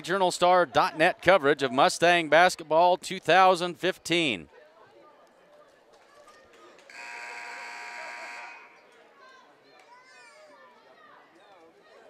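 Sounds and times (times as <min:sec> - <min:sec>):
crowd chatter: 0:00.0 - 0:12.0
scoreboard horn buzzing: 0:06.9 - 0:08.8.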